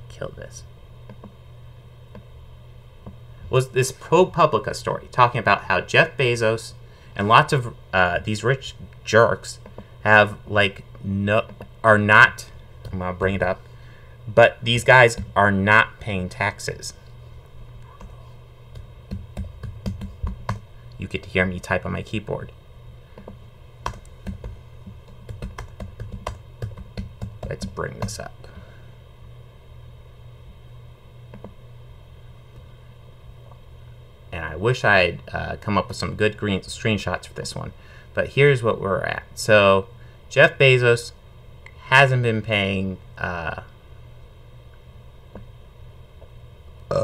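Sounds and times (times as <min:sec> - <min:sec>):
electrical hum: 0:00.0 - 0:47.0
computer keyboard typing: 0:18.7 - 0:20.6, 0:23.8 - 0:28.2.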